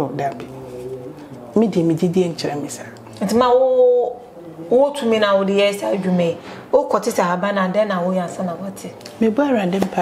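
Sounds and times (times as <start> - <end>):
woman speaking: 1.6 - 10.0.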